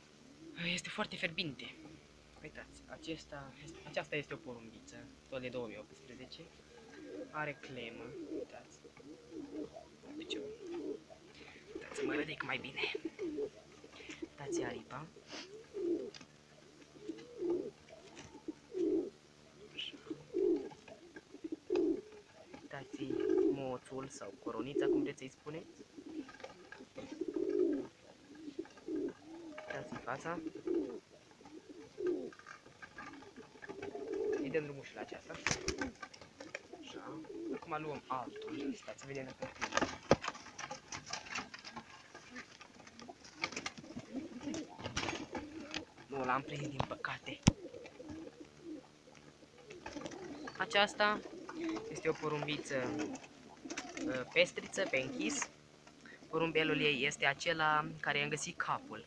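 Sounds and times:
pigeons cooing: 0:00.0 - 0:59.0
scuffling and clicks: 0:35.2 - 0:50.6.

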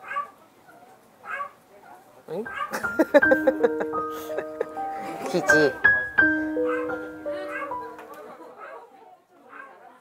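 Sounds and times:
dog whining: 0:06.6 - 0:07.9.

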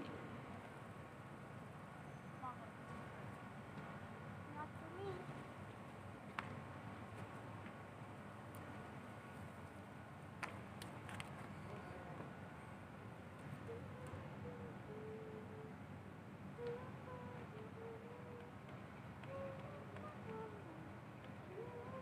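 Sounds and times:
low steady hum: 0:11.4 - 0:22.0.

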